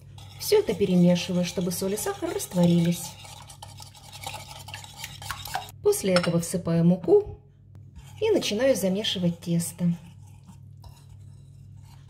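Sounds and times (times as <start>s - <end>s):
whisk clicking against bowl: 0.1s - 5.7s.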